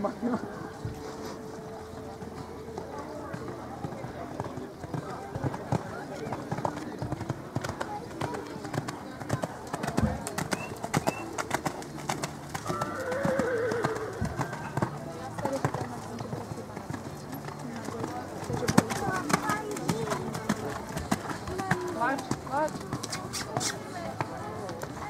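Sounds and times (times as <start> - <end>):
people talking: 0.0 - 11.6, 14.5 - 25.0
horse hoofbeats on sand: 2.2 - 25.0.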